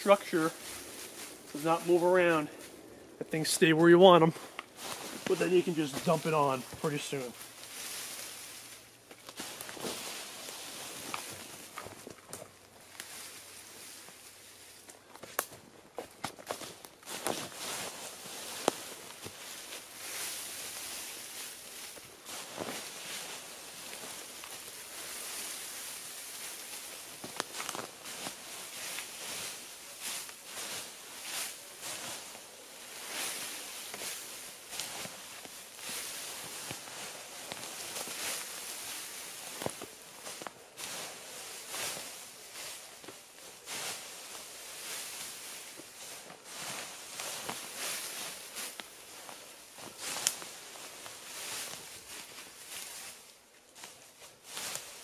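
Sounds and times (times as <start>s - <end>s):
dry leaves rustling and crackling: 0.0s - 55.0s
footsteps in leaf litter: 0.0s - 55.0s.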